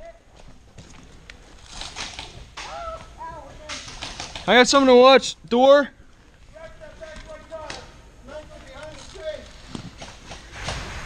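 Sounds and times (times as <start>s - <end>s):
rustling: 0.3s - 4.9s, 6.0s - 11.0s
distant voices calling out: 2.5s - 10.6s.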